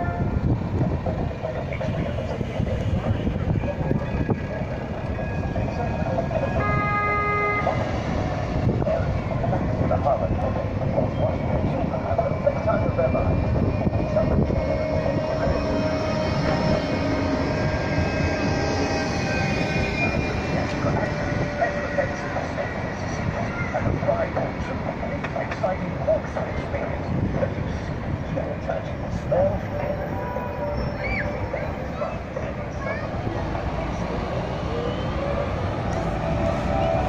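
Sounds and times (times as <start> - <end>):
tram passing with motor whine: 0.0 - 37.0
tram wheel noise: 0.0 - 37.0.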